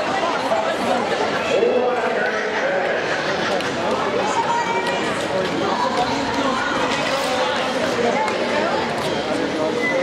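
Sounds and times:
spectators talking and calling out: 0.0 - 10.0.

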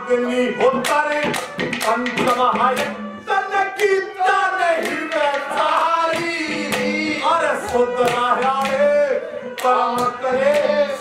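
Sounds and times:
man singing through a microphone: 0.0 - 11.0
sharp percussive taps: 0.6 - 3.1, 4.8 - 9.0, 9.6 - 11.0.

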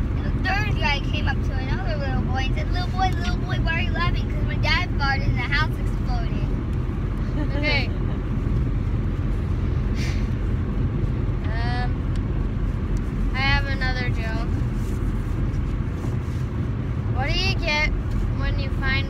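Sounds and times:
car cabin road and engine rumble: 0.0 - 19.0
child's voice: 0.2 - 6.5, 11.5 - 12.0, 17.2 - 19.0.

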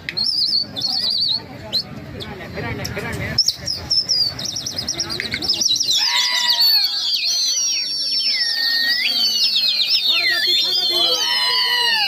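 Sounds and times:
people whistling: 0.0 - 2.0, 3.4 - 12.0.

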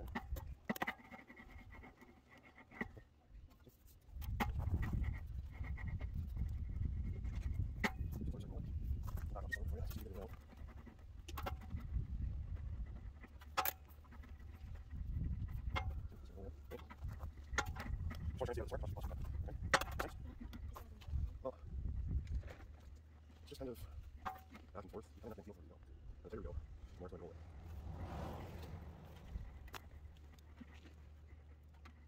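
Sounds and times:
steel sheet rolling rumble: 27.3 - 30.2.

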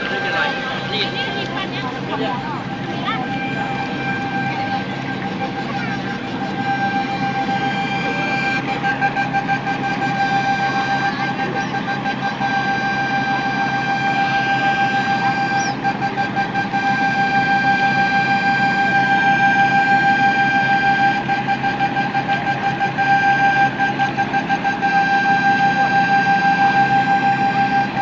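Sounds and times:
boat engines running: 0.0 - 28.0
high-pitched engine whine: 0.0 - 28.0.

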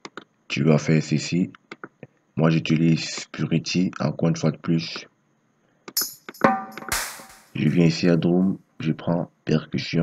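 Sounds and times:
hit with ringing pitched tone: 6.0 - 7.6
short percussion hits: 6.0 - 7.8.

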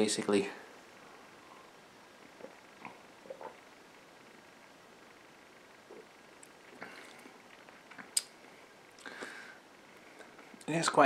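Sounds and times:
man swallowing gulps: 2.3 - 3.7, 5.9 - 8.3
faint mouth or glass noises: 2.4 - 3.6.

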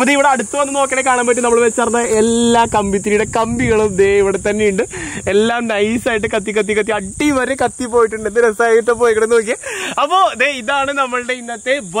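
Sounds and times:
insects chirring: 0.0 - 12.0
man talking: 0.0 - 12.0.

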